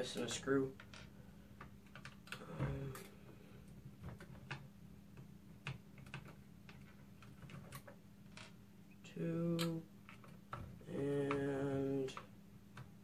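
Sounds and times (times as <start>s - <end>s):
faint steady hum: 0.0s - 13.0s.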